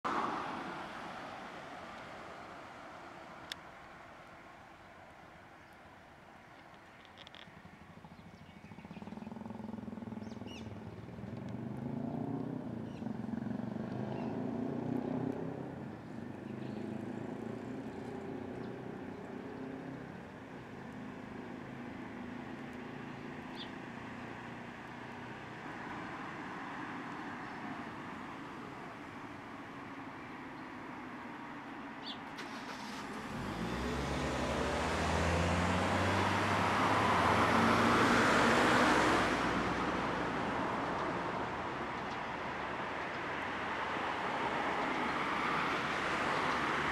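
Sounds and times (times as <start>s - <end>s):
engine rumble of passing vehicles: 0.0s - 46.9s
road traffic: 0.0s - 46.9s.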